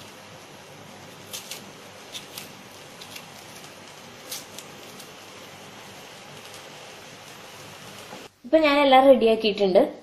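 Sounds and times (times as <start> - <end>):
steady background hiss: 0.0 - 10.0.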